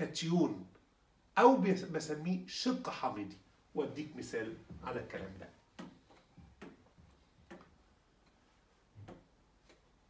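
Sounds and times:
faint taps on touchscreen: 0:05.8 - 0:08.4.

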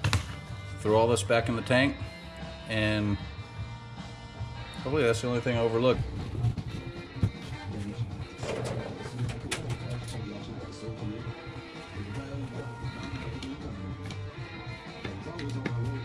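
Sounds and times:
guitar background music: 0:00.0 - 0:16.0.

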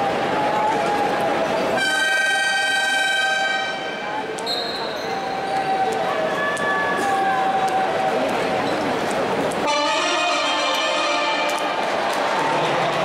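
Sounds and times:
crowd noise: 0:00.0 - 0:13.0
arena buzzer horn: 0:01.8 - 0:03.9, 0:09.7 - 0:11.8
high thin whistle tone: 0:04.4 - 0:05.2.

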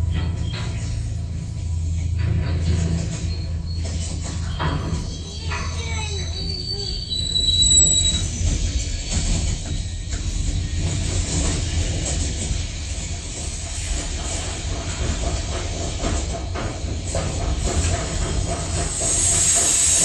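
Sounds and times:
train rumble and rattle: 0:00.0 - 0:20.0
high wheel squeals: 0:03.0 - 0:10.1.

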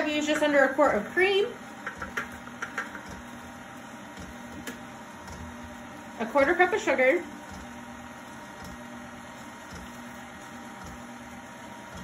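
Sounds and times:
stand mixer motor humming: 0:00.0 - 0:12.0.

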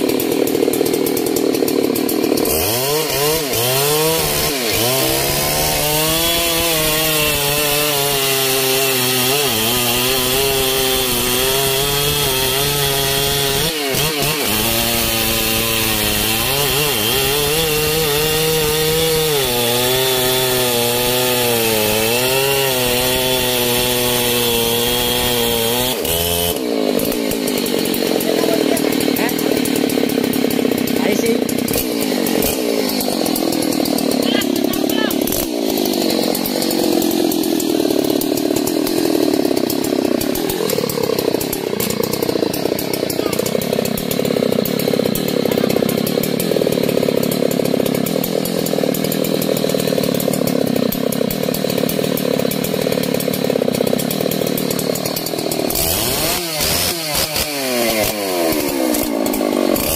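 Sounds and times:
chainsaw cutting log: 0:00.0 - 0:59.9
chainsaw engine revving: 0:00.0 - 0:59.9.

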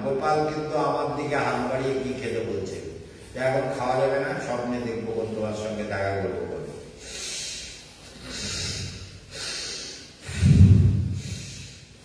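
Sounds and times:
breath blowing onto microphone: 0:07.0 - 0:12.0
forceful breaths through nostril: 0:07.0 - 0:12.0.

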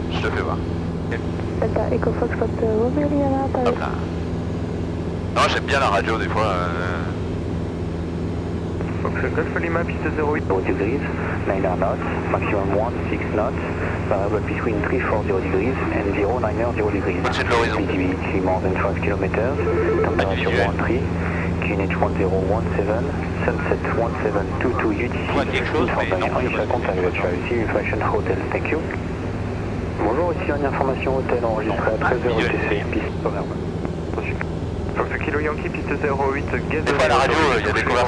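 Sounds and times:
people talking: 0:00.0 - 0:04.1, 0:05.4 - 0:07.2, 0:08.8 - 0:29.0, 0:30.0 - 0:38.0
propeller plane engine drone: 0:00.0 - 0:38.0.

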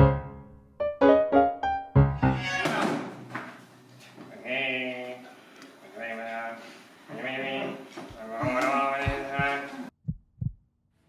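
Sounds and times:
person's wavering voice: 0:07.6 - 0:09.9.

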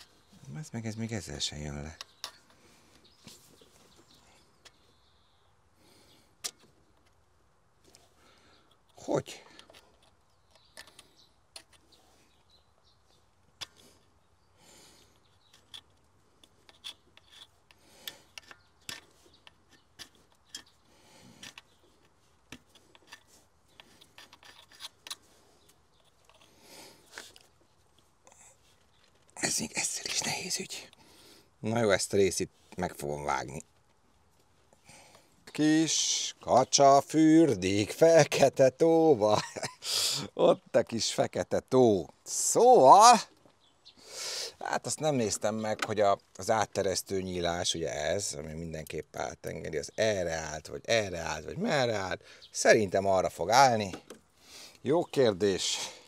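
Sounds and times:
screwdriver scraping metal: 0:15.4 - 0:20.8, 0:21.4 - 0:25.3, 0:25.9 - 0:27.4.

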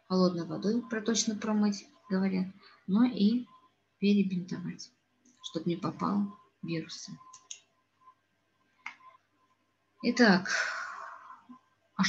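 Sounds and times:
computer mouse click: 0:07.3 - 0:07.7.

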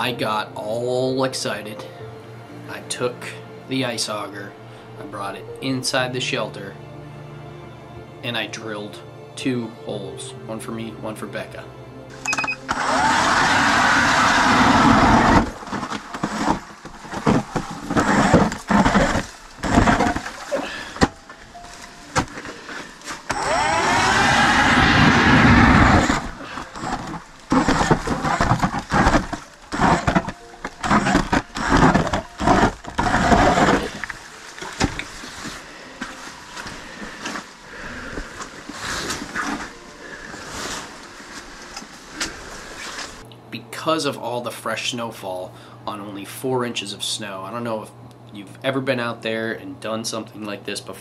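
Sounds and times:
ice auger drilling: 0:12.1 - 0:43.2.

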